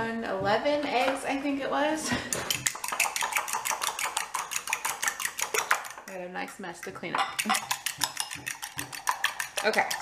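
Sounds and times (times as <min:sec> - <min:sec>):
whisk clinking against glass bowl: 0:02.4 - 0:10.0.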